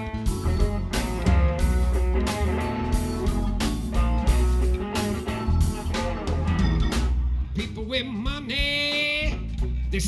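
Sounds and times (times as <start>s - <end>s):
electric guitar lead: 0.0s - 7.6s
live blues band playing: 0.0s - 10.0s.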